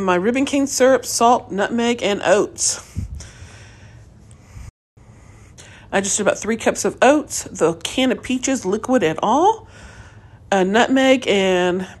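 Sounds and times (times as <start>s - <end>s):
short breath: 2.8s - 5.9s, 9.7s - 10.4s.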